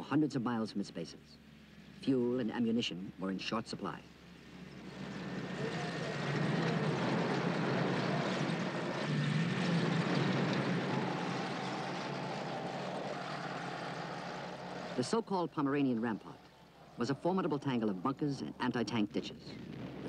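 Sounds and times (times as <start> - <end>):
tank engines rumbling: 0.0 - 20.0.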